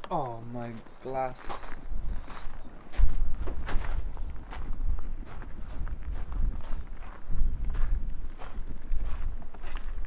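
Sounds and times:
footsteps crunching on gravel: 0.2s - 10.0s.

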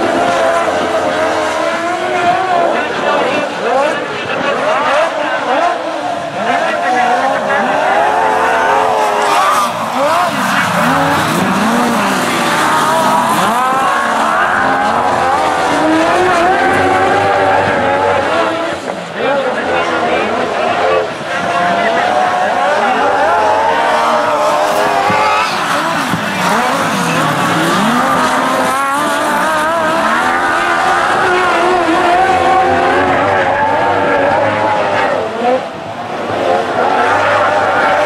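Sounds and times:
sidecar motorcycle engines racing: 0.0s - 38.0s.

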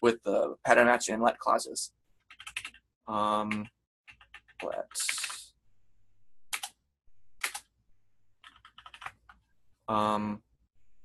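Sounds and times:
keyboard keystrokes: 6.5s - 6.7s.

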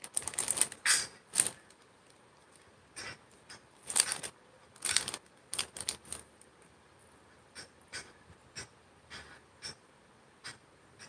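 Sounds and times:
plastic pouches crinkling: 0.0s - 2.7s, 3.8s - 6.6s.

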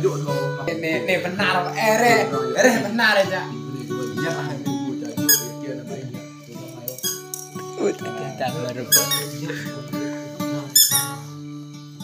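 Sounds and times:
acoustic guitar playing: 0.0s - 12.0s
sharp high squeak: 5.3s - 5.6s, 7.0s - 7.4s, 8.9s - 9.4s, 10.8s - 11.3s.

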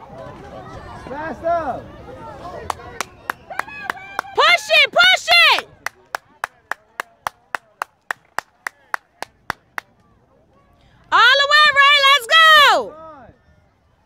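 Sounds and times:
quick hand claps: 5.8s - 10.1s
high-pitched cheering shouts: 11.2s - 12.9s.

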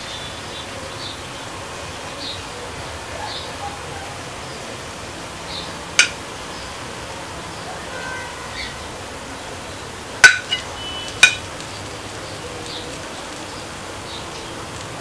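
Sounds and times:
steady background noise: 0.0s - 15.0s.

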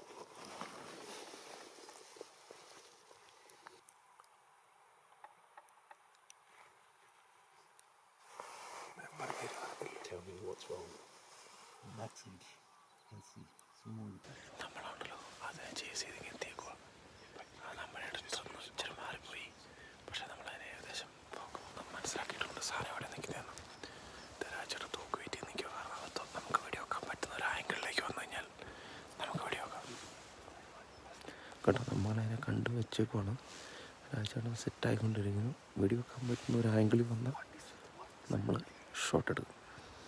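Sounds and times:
man whispering: 8.9s - 11.0s, 11.8s - 40.0s.

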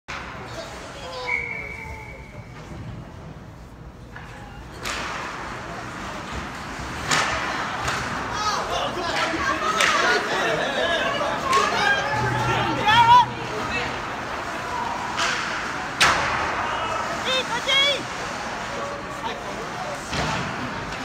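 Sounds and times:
spectators' voices: 0.1s - 21.0s
hockey stick and puck knocks: 7.0s - 8.3s.

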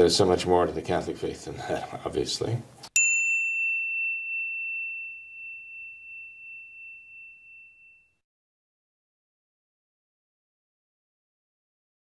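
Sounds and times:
bell chime ringing: 3.0s - 8.2s.

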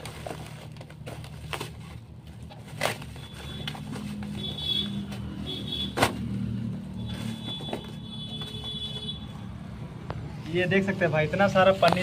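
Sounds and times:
bubble wrap crinkling: 0.0s - 5.4s.

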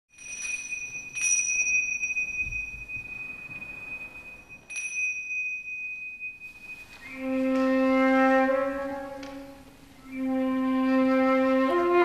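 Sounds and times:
high-pitched metal chime: 0.1s - 7.7s.

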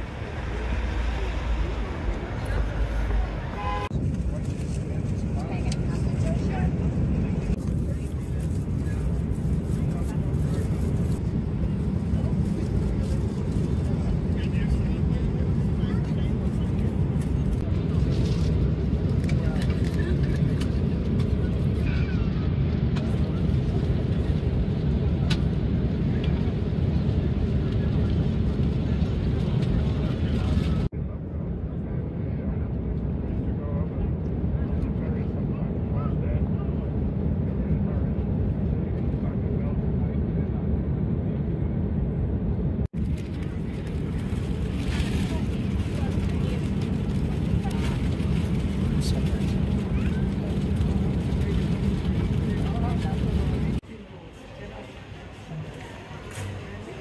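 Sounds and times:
airliner cabin drone: 0.0s - 57.0s
faint passenger voices: 0.0s - 57.0s.

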